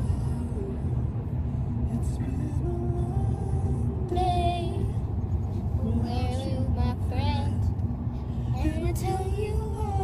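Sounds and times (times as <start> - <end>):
moving vehicle rumble: 0.0 - 10.0.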